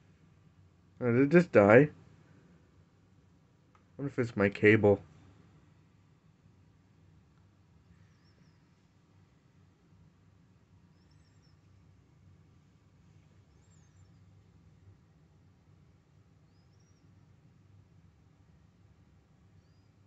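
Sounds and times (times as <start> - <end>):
low steady hum: 0.0 - 20.0
faint high-pitched chirps: 7.8 - 9.2, 10.8 - 12.0, 13.1 - 14.7, 16.4 - 17.8, 19.4 - 20.0.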